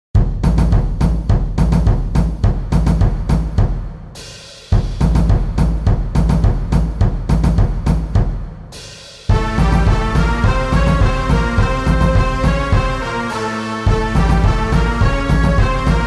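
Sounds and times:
march drums and cymbals: 0:00.2 - 0:16.0.

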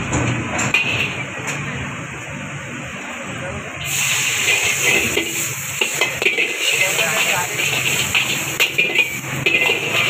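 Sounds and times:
metal ladle scraping a wok: 0:03.8 - 0:10.0
vegetables sizzling in a wok: 0:03.8 - 0:10.0.

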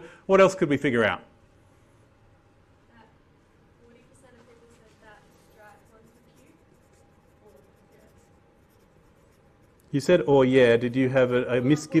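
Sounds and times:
pencil scratching on paper: 0:05.4 - 0:09.8.

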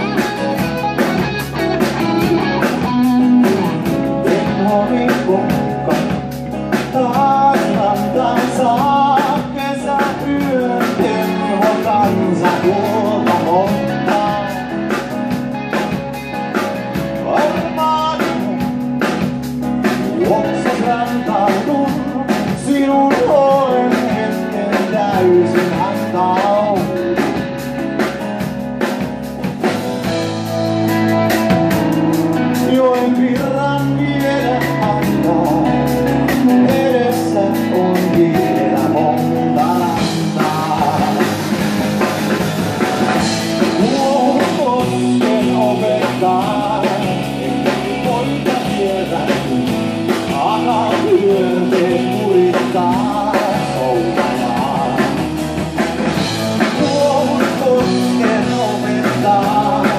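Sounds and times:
bass guitar: 0:00.0 - 0:59.9
drum kit beat: 0:00.0 - 0:59.9
electric guitar: 0:00.0 - 0:59.9
rock band playing live: 0:00.0 - 0:59.9
male lead vocal: 0:01.7 - 0:15.9, 0:16.9 - 0:28.2, 0:32.2 - 0:59.9.

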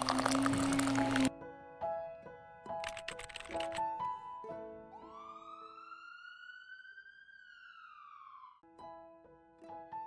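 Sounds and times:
siren-like wail: 0:05.0 - 0:08.6.

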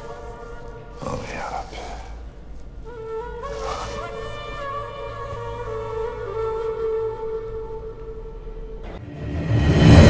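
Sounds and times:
held flute-like note: 0:02.9 - 0:09.0.

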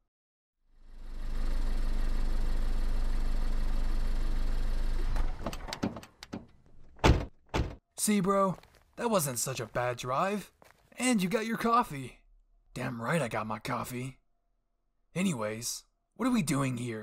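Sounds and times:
car engine running: 0:00.8 - 0:05.5
loud thunks: 0:05.2 - 0:07.8.

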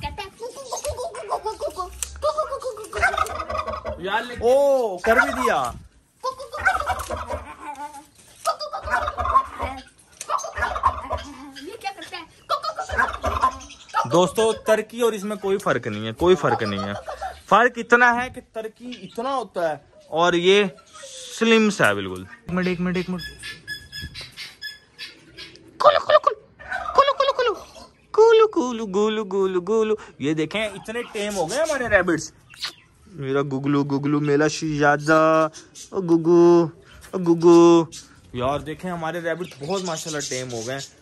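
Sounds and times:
turkey gobbling: 0:00.2 - 0:17.9, 0:18.7 - 0:28.4, 0:30.4 - 0:33.1, 0:33.7 - 0:38.3, 0:39.3 - 0:41.0.

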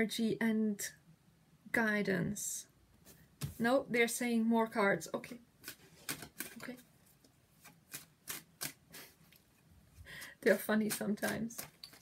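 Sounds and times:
cards shuffling: 0:05.6 - 0:06.8, 0:07.6 - 0:09.0, 0:10.5 - 0:12.0.

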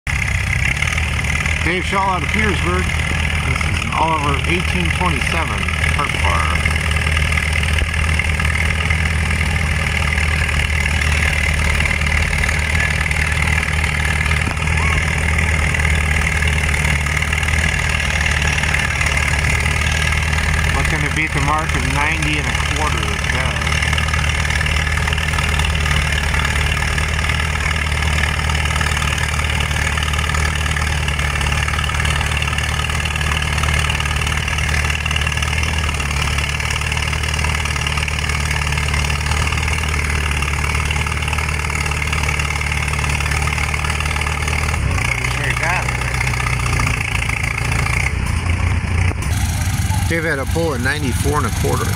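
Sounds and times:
tractor engine running under load: 0:00.0 - 0:51.9.

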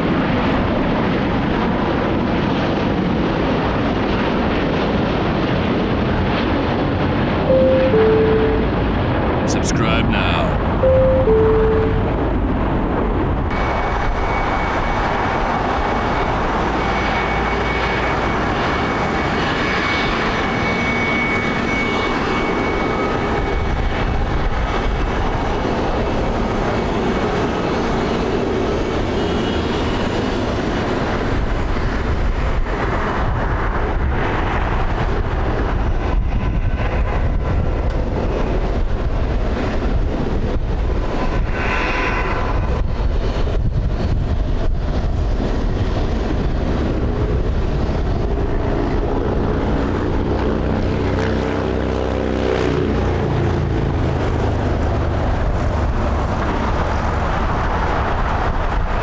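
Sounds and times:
jet engines running: 0:02.8 - 0:59.0
thin high whine: 0:07.5 - 0:12.2.

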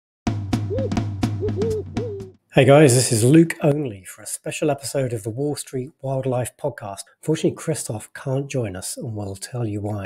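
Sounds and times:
drum beat: 0:00.3 - 0:02.4
low bass note: 0:00.5 - 0:02.3
hooting owl-like calls: 0:00.7 - 0:02.3.

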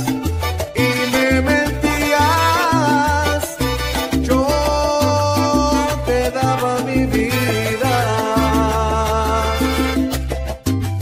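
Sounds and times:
salsa band music: 0:00.0 - 0:11.0.

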